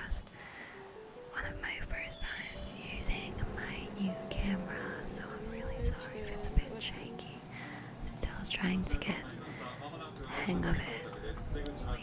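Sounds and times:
woman whispering: 0.0s - 0.3s, 1.3s - 9.3s, 10.3s - 11.1s
soft background music: 0.0s - 12.0s.

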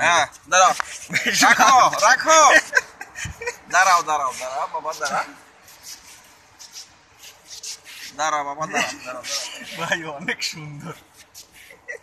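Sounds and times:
faint rubbing and scuffing: 0.0s - 2.9s, 3.7s - 12.0s
short scrapes: 4.2s - 8.2s.

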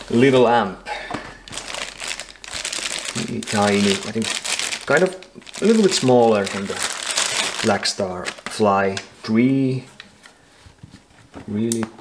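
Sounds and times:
plastic bag crinkling: 1.4s - 9.2s.

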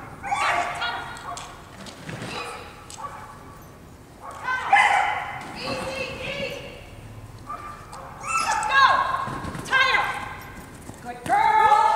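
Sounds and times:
dog yelping barks: 0.0s - 1.5s, 2.3s - 5.9s, 7.5s - 9.3s.

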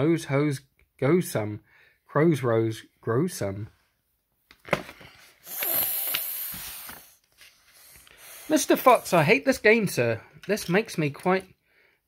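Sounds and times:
paper page turning: 4.5s - 9.1s.

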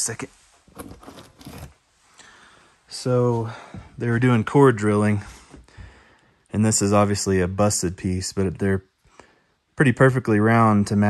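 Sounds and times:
cardboard boxes rustling and scraping: 0.6s - 1.8s.

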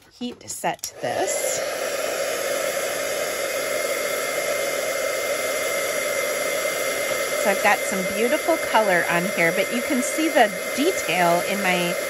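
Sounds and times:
heat gun blowing hot air: 0.6s - 12.0s.

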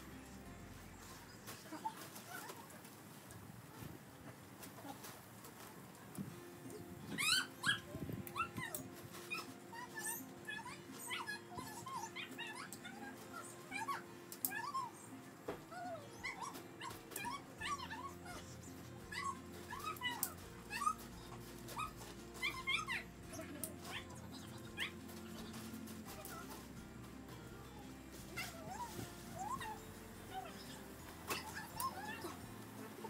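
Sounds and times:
background music: 0.0s - 2.0s, 6.0s - 33.0s.

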